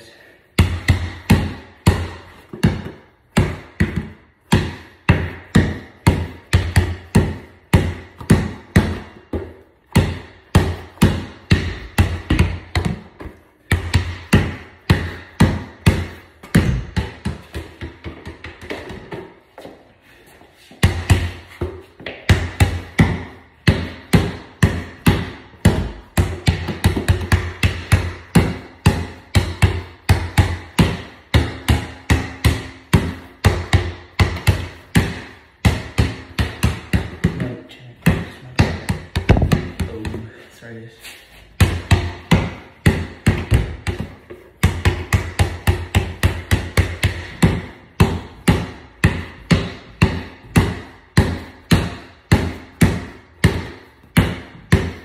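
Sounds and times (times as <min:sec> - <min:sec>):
basketball dribbling on hard floor: 0:00.6 - 0:19.8, 0:20.7 - 0:40.4, 0:41.5 - 0:55.0.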